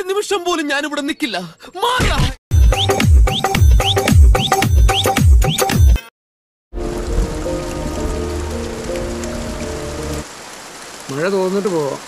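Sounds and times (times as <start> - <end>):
film score music: 2.5 - 6.0, 6.8 - 10.3
steady rain falling: 6.8 - 12.0.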